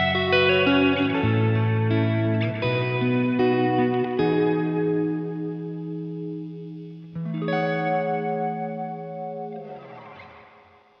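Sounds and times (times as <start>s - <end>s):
clean electric guitar chords: 0.0s - 11.0s.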